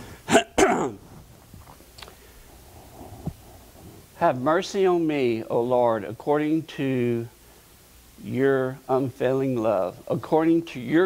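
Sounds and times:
man coughing: 0:00.3 - 0:01.0.

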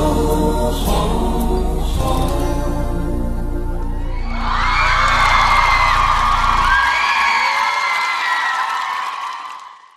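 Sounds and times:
backing music bass: 0:00.0 - 0:07.0
concert audience screaming and cheering: 0:03.8 - 0:09.9.

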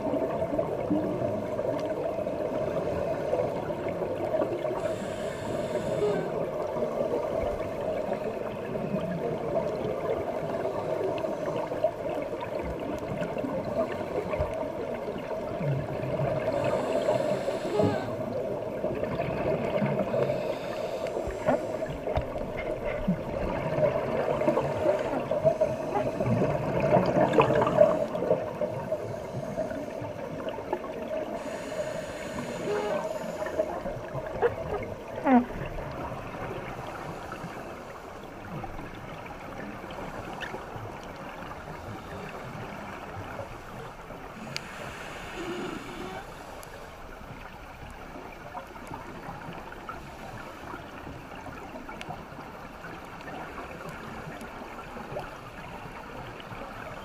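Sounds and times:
muffled underwater water noise: 0:00.0 - 0:57.0
hissing exhaled bubbles: 0:23.0 - 0:37.7.

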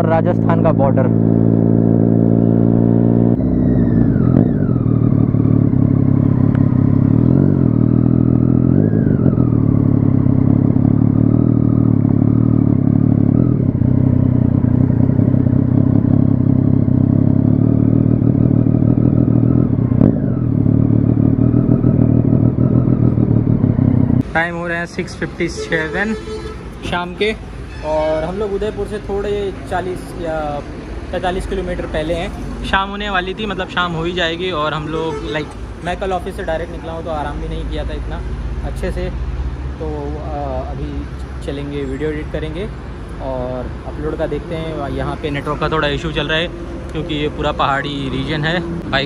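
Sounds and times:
motorcycle engine revving: 0:00.0 - 0:24.3, 0:43.2 - 0:49.0.

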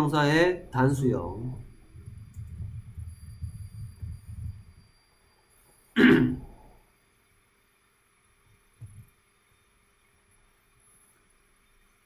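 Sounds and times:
low muffled rumbling: 0:00.5 - 0:04.9
person clearing throat: 0:06.0 - 0:06.6.

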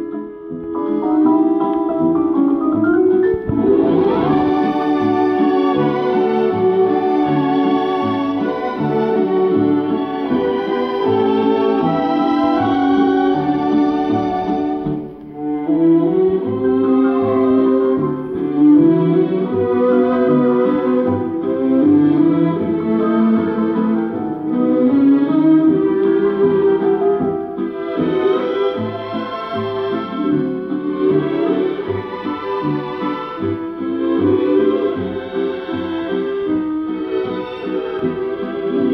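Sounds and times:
old record playing music: 0:00.0 - 0:38.9.

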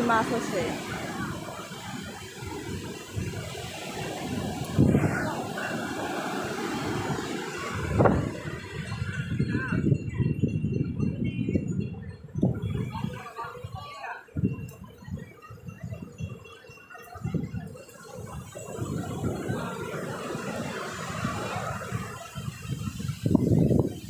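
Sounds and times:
ocean surf on sandy beach: 0:00.0 - 0:10.1, 0:12.7 - 0:24.0
wind buffeting microphone: 0:00.0 - 0:24.0.

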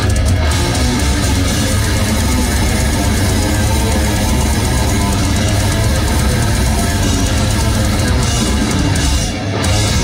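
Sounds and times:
death metal band playing live: 0:00.0 - 0:10.0.

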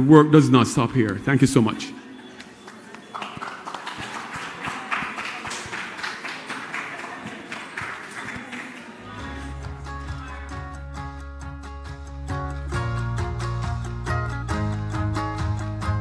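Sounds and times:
audience clapping: 0:02.4 - 0:09.4
instrumental music: 0:09.2 - 0:16.0.

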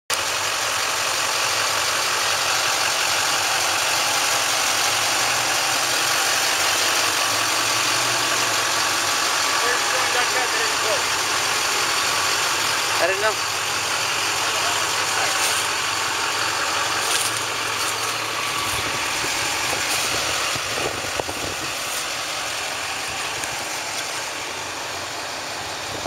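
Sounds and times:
vehicle engine idling: 0:00.1 - 0:26.0
faint voices: 0:09.4 - 0:25.4.

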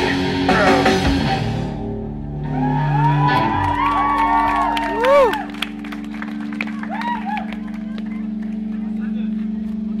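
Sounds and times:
low drone from stage equipment: 0:00.0 - 0:10.0
crowd voices: 0:04.6 - 0:10.0.

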